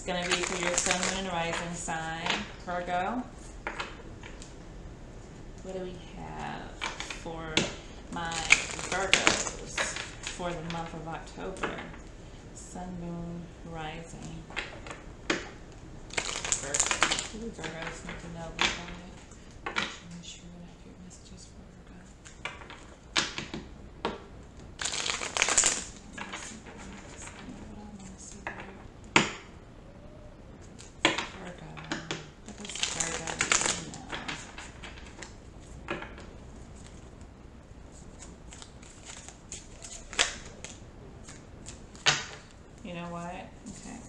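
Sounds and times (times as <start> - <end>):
cards shuffled by hand: 24.8 - 27.6, 37.9 - 42.5.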